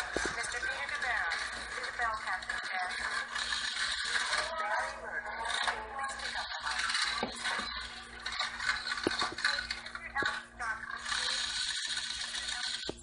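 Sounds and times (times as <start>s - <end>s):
slot machines clicking and clattering: 0.0s - 4.6s, 5.5s - 13.0s.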